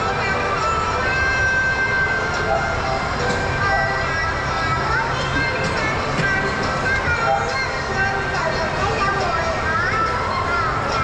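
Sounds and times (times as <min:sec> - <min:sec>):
background music: 0:00.0 - 0:11.0
crowd chatter: 0:00.0 - 0:11.0.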